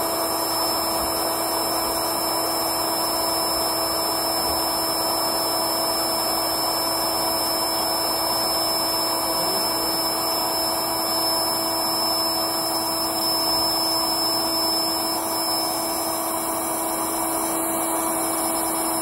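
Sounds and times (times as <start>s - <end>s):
electric air pump running: 0.0s - 19.0s.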